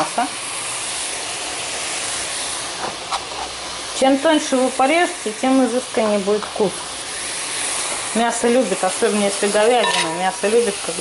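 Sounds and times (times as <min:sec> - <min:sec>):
meat sizzling in hot oil: 0:00.0 - 0:11.0.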